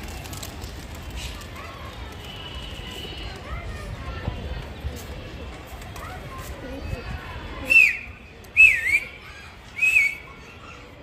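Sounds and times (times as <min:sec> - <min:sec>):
loud person whistling: 0:07.7 - 0:09.1, 0:09.8 - 0:10.2.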